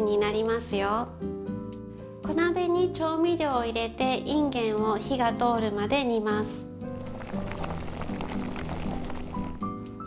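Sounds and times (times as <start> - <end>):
soft background music: 0.0 - 10.0
liquid bubbling in a pot: 6.9 - 9.7.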